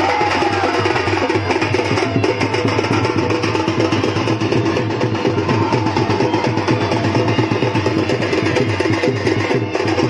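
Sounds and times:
barrel drum rhythm: 0.0 - 10.0.

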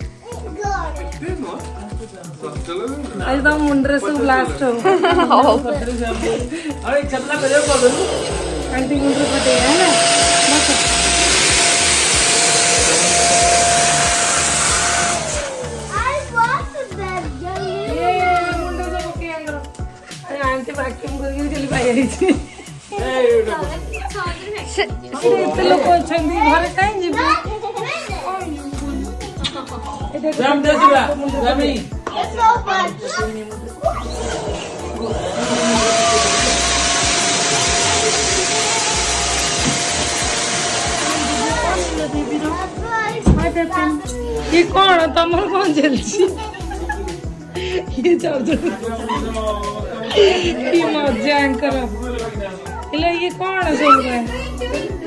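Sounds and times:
music with steady beat: 0.0 - 55.0
electric motor whining: 6.1 - 16.4, 33.9 - 42.9
children's voices: 15.7 - 19.3, 26.3 - 29.9, 32.1 - 35.8, 41.0 - 46.6, 52.7 - 55.0.

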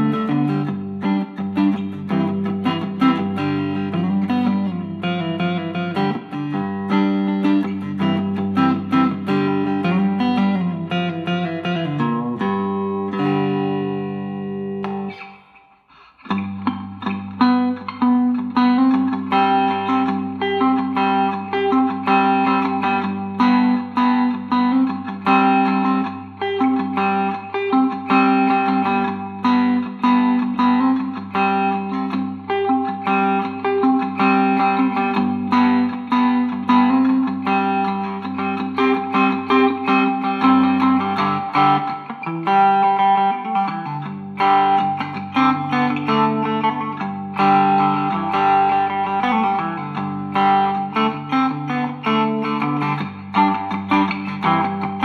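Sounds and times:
cigar box guitar picking riff: 0.0 - 55.0.

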